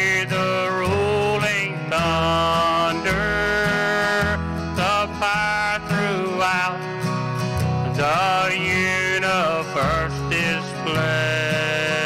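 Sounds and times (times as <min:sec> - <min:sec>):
country gospel song: 0:00.0 - 0:12.0.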